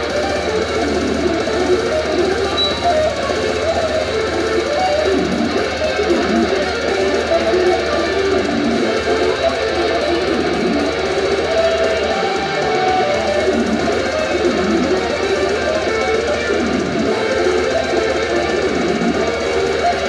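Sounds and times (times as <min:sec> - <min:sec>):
electric guitar playing fast notes: 0:00.0 - 0:20.0.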